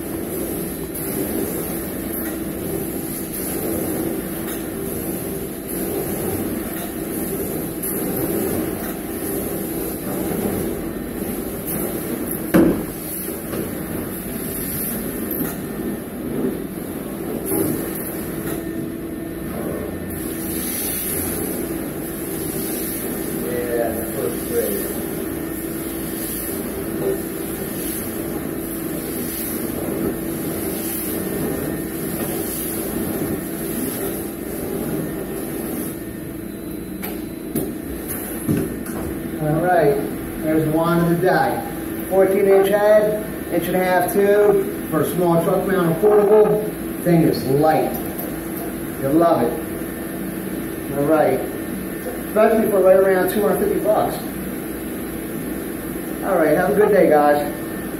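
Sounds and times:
carpet extraction suction drone: 4.8s - 49.7s.

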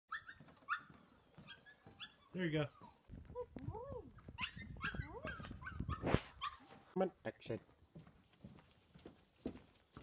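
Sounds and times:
puppy whimpering and yipping: 0.1s - 3.1s, 4.4s - 6.7s.

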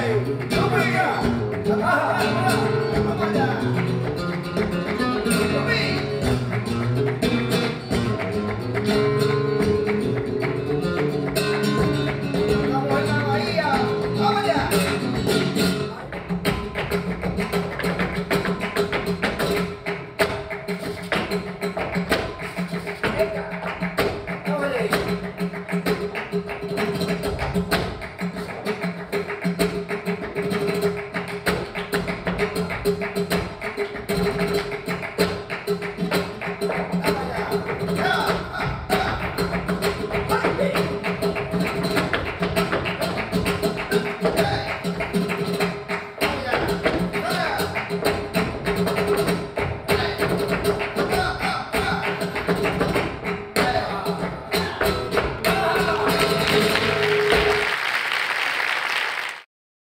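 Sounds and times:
audience applause: 0.0s - 49.8s, 55.5s - 59.5s
flamenco acoustic guitar: 0.0s - 57.8s
sharp rhythmic handclaps: 0.0s - 59.5s.

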